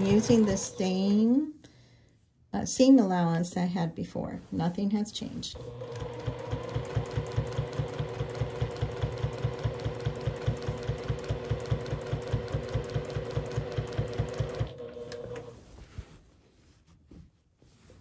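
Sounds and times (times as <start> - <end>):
sewing machine stitching: 0.0 - 1.2, 5.5 - 15.6
motor hum: 5.6 - 15.5.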